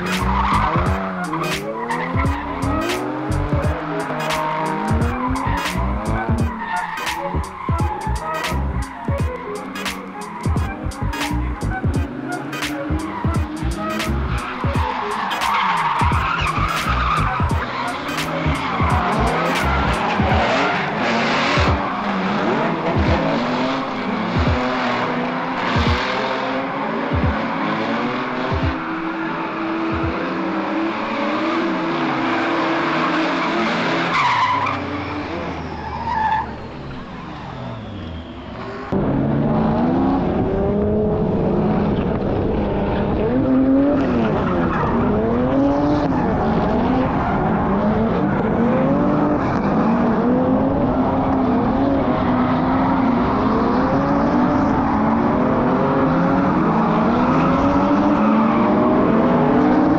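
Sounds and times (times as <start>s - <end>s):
car engine revving: 0.0s - 59.9s
tyres skidding and squealing: 0.0s - 59.9s.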